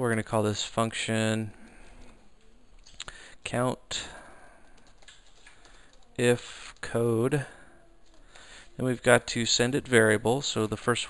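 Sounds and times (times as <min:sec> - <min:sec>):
computer keyboard keystrokes: 0:04.6 - 0:06.0.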